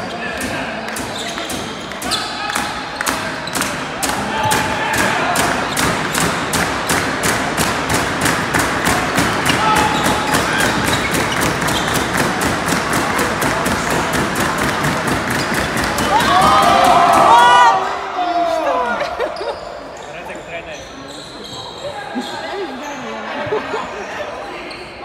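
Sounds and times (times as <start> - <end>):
people shouting: 9.0 - 10.8, 15.8 - 19.0.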